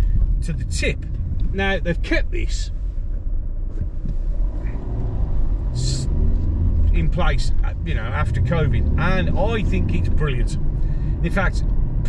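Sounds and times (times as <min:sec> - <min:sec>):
car engine: 0:00.0 - 0:12.0
road rumble: 0:00.0 - 0:12.0.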